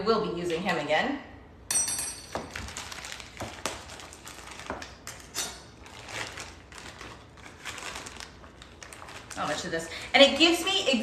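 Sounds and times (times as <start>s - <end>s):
plastic packaging crinkling: 2.4s - 11.0s.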